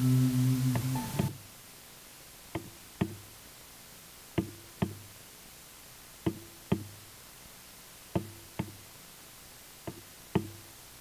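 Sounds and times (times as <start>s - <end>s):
soft knocks in pairs: 2.5s - 3.3s, 4.4s - 5.1s, 6.2s - 7.0s, 8.1s - 8.8s, 9.8s - 10.7s.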